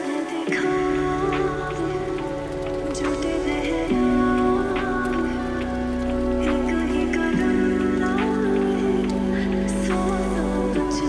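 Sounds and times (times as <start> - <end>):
keyboard chords: 0.0 - 11.0
pattering rain-like noise: 0.0 - 11.0
low bass: 0.8 - 11.0.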